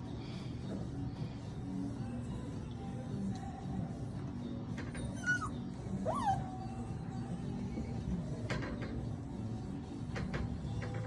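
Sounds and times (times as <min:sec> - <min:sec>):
puppies whining: 0:05.0 - 0:07.4.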